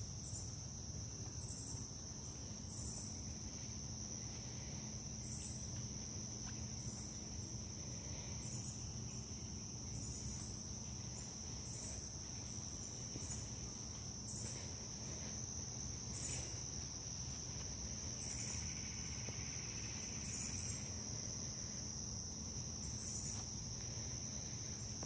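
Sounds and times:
higher insect call: 0:00.0 - 0:25.0
insect high trill: 0:01.4 - 0:25.0.

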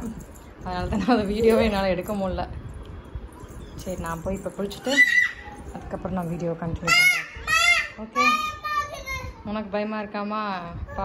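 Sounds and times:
toddler squealing and calling: 0:04.9 - 0:05.6, 0:06.9 - 0:08.8.

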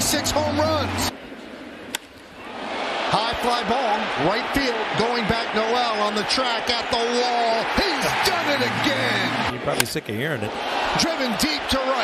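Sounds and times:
ballpark crowd noise: 0:00.0 - 0:12.0.

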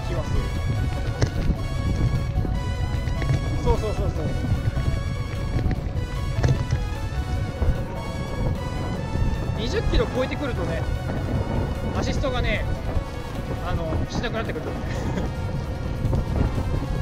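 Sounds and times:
music with held tones: 0:00.0 - 0:17.0
wind rumble on microphone: 0:00.0 - 0:17.0.

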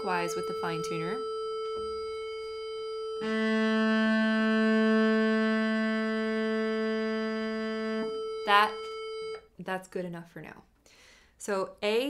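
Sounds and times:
cello bowed note: 0:00.0 - 0:09.4
electronic drone: 0:00.0 - 0:09.4.

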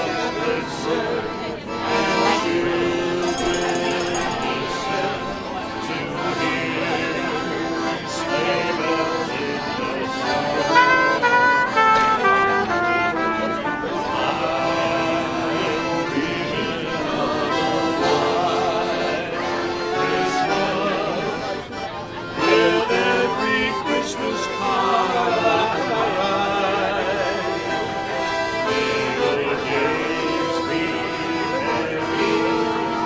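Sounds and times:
brass band playing: 0:10.6 - 0:14.8.

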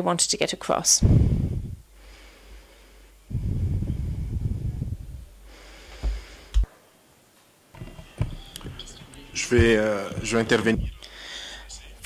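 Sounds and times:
low rumbling noise: 0:01.0 - 0:06.7.

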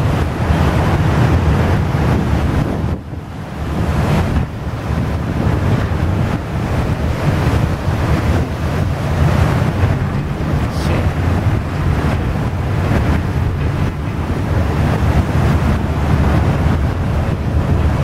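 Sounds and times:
ship low rumble: 0:00.0 - 0:18.0
water churning through sea ice: 0:00.0 - 0:18.0
wind rushing over microphone: 0:00.0 - 0:18.0.

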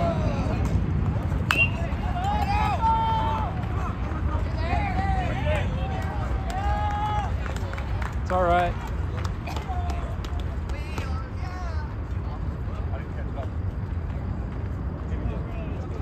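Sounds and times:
spectators shouting and cheering: 0:00.0 - 0:08.0.

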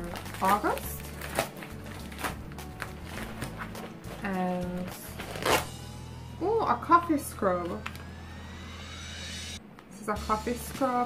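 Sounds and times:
plastic mailer being torn open: 0:00.0 - 0:04.2, 0:04.8 - 0:05.7.

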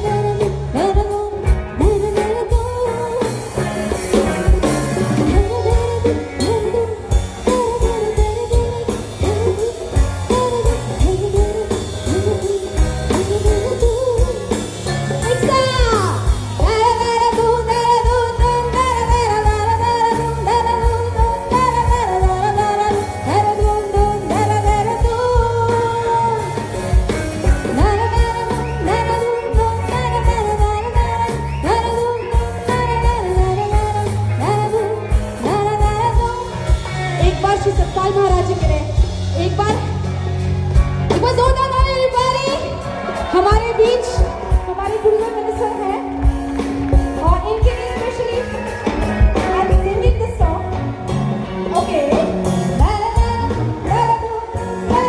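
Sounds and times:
woman singing: 0:00.0 - 0:40.1, 0:41.1 - 0:51.0, 0:51.6 - 0:55.0
drum kit steady beat: 0:00.0 - 0:55.0
electric guitars: 0:00.0 - 0:55.0
live band playing: 0:00.0 - 0:55.0.

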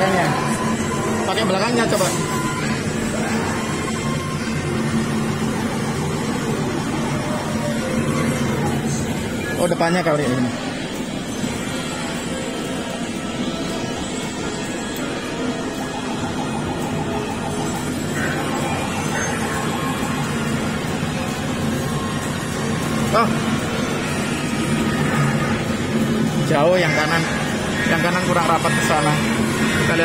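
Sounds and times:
game machine music and jingles: 0:00.0 - 0:30.0.

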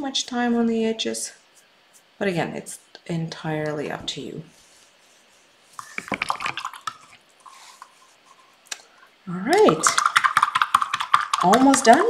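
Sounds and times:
quick clicks and small splashes: 0:05.8 - 0:07.2, 0:09.6 - 0:12.0
paintbrush rinsed in water cup: 0:09.5 - 0:12.0.

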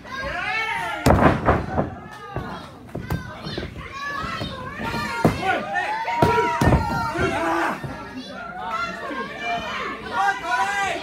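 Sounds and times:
spectators shouting: 0:04.8 - 0:11.0.

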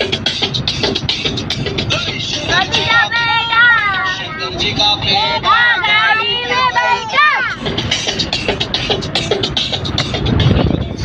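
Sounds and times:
song with high singing voice: 0:00.0 - 0:11.0.

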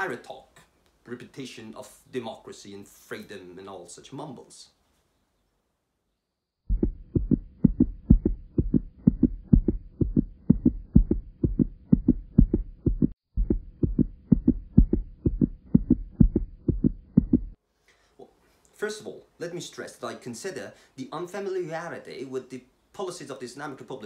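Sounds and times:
heartbeat thumps: 0:06.6 - 0:17.6.

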